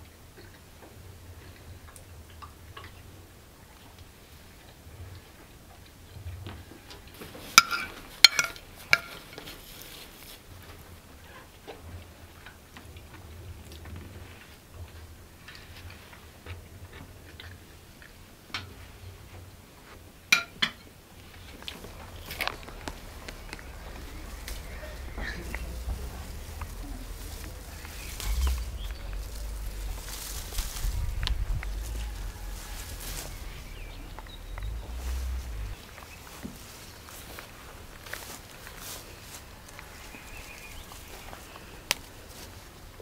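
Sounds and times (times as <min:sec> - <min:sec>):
tableware clinking: 0:07.6 - 0:09.4
eating sounds: 0:21.2 - 0:36.5.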